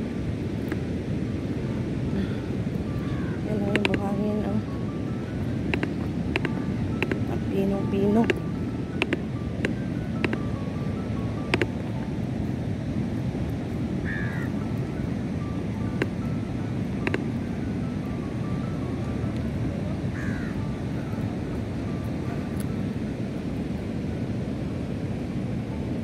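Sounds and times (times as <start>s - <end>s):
faint music with beat: 0.0s - 24.3s
surf on beach: 0.0s - 26.0s
wind buffeting microphone: 0.0s - 26.0s.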